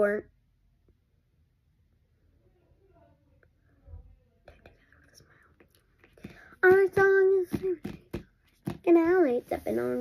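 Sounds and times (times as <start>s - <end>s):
faint whispering: 3.5s - 6.2s.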